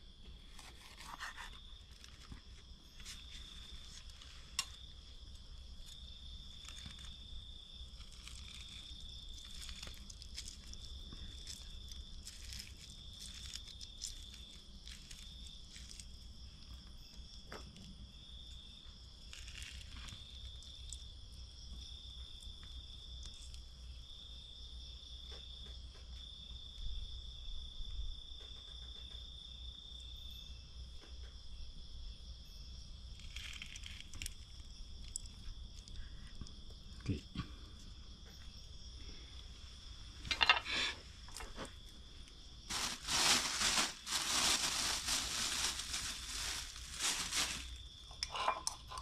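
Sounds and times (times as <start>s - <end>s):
insects trilling: 0.0s - 49.0s
food preparation clicks and rustles: 0.5s - 16.9s, 42.7s - 49.0s.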